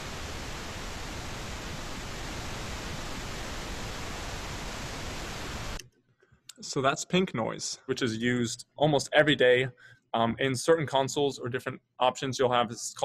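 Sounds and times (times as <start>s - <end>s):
pink noise hiss: 0.0s - 5.8s.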